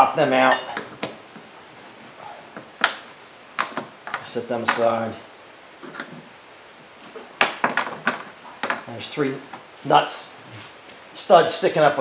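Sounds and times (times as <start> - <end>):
plastic covers clicking and tapping: 7.4 - 8.8.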